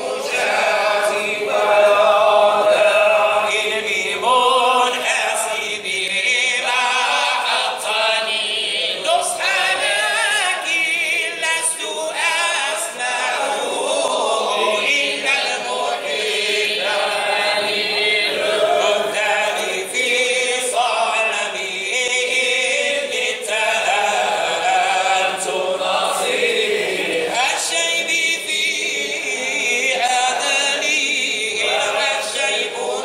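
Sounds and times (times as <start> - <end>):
men chanting in unison: 0.0 - 33.0.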